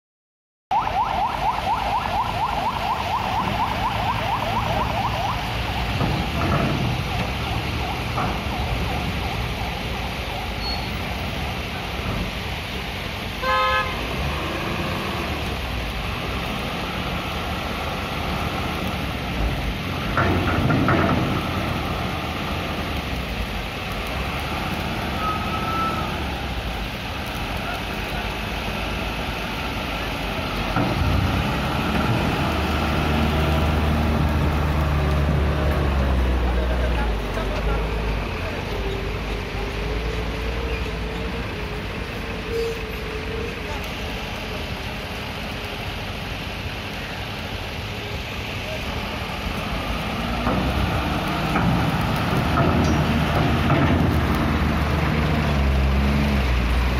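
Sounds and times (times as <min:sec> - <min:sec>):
truck engines running: 0:01.0 - 0:56.9
heavy engine rumbling: 0:02.3 - 0:56.9
short horn toot: 0:13.4 - 0:14.0.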